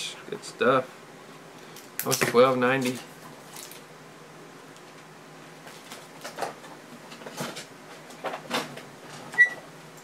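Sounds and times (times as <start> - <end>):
knocks and rustles of handling: 5.6 - 9.3.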